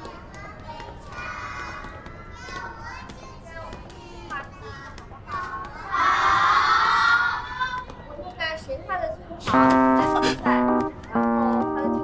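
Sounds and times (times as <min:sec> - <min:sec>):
children chattering and calling out: 0:00.0 - 0:12.0
children shouting together: 0:05.8 - 0:07.8.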